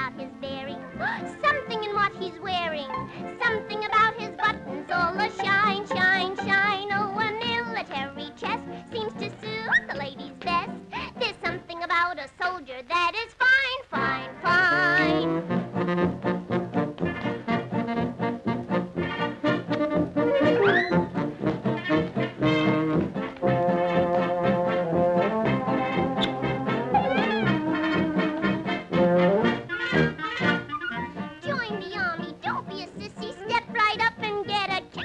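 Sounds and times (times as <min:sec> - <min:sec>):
orchestral cartoon music with brass: 0:14.0 - 0:35.0.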